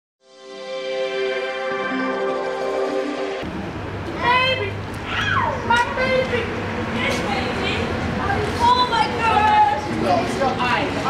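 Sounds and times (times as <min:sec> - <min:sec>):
children calling and shouting: 0:04.0 - 0:11.0.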